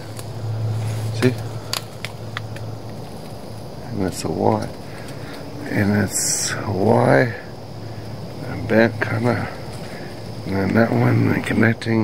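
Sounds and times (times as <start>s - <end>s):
twigs rubbing and snapping: 0.0s - 5.8s, 8.2s - 11.7s
steady low hum: 0.0s - 12.0s.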